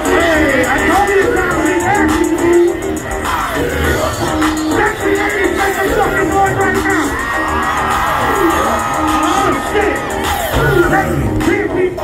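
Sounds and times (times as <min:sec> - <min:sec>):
live hip-hop music: 0:00.0 - 0:12.0
person rapping: 0:00.0 - 0:12.0.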